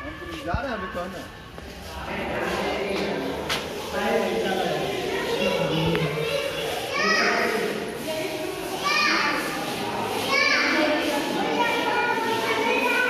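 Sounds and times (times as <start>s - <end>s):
children shouting and chattering: 0.0s - 13.0s
visitor chatter: 0.0s - 13.0s.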